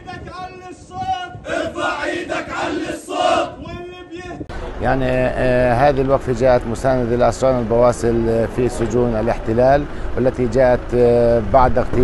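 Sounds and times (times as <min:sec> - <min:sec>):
men chanting: 0:00.2 - 0:03.7
man speaking: 0:03.6 - 0:12.0.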